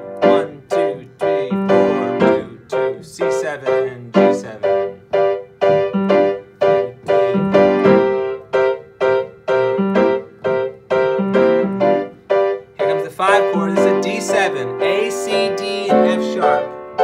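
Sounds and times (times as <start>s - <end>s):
piano playing blues chords: 0.0s - 17.0s.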